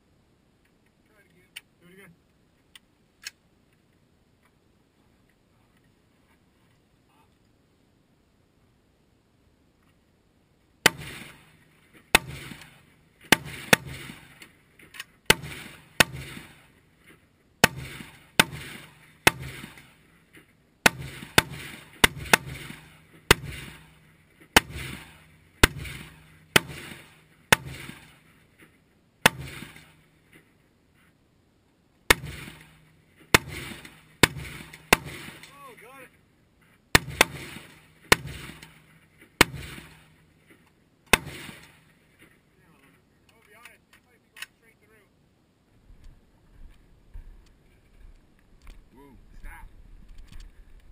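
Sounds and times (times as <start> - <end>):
rifle gunshots: 10.8 - 14.5, 15.2 - 16.8, 17.6 - 20.1, 20.8 - 28.3, 29.2 - 30.1, 32.1 - 36.1, 36.9 - 40.3, 41.1 - 42.0.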